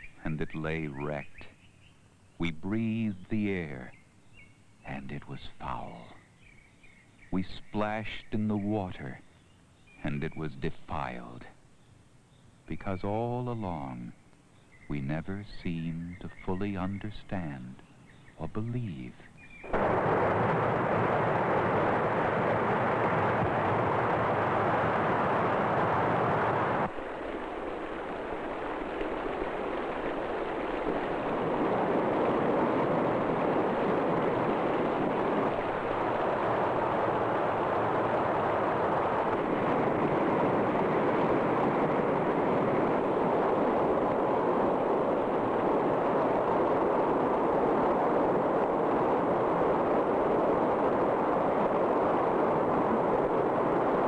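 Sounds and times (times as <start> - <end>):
torrent of water rushing: 19.7 - 54.0.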